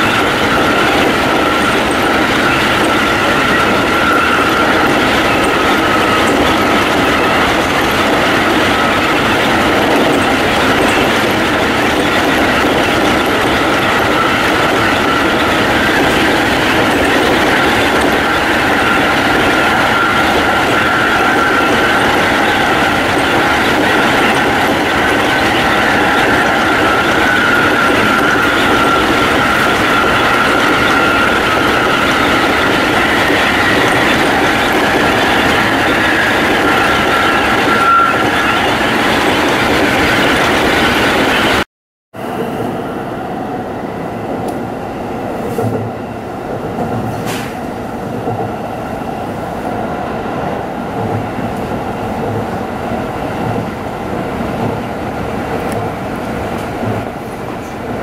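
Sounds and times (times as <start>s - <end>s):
electric train running with whine: 0.0s - 41.6s.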